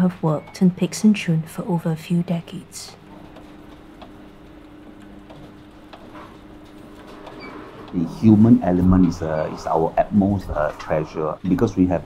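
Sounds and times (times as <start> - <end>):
band sealer humming: 3.0 - 12.0.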